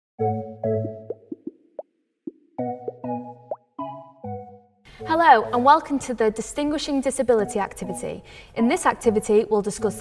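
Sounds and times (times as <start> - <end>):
rising pop sound effects: 0.7 - 4.6.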